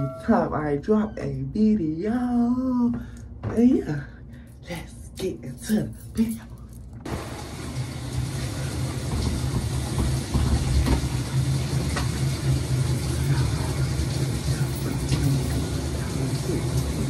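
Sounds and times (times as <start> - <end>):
shower running: 7.1 - 17.0.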